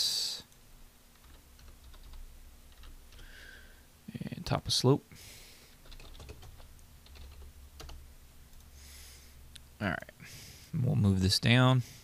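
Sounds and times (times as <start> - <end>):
typing on keyboard: 1.2 - 3.2, 5.8 - 8.0.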